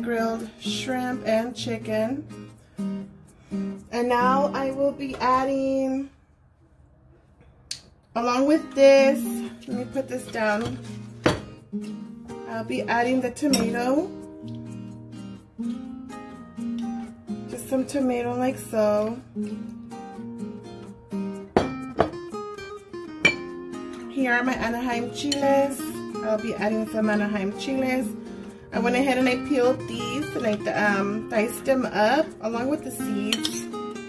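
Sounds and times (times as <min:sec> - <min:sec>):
acoustic guitar music: 0:00.0 - 0:06.2, 0:08.1 - 0:34.0
metal spoon clinking on dishes: 0:13.5 - 0:13.8, 0:23.2 - 0:23.5, 0:33.3 - 0:33.6.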